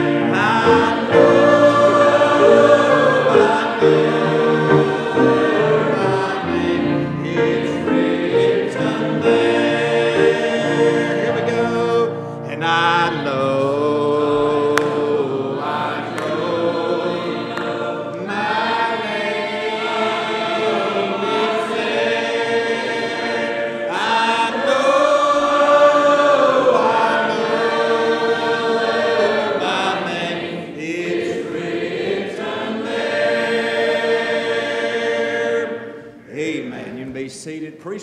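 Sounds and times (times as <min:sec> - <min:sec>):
congregation singing: 0:00.0 - 0:38.0.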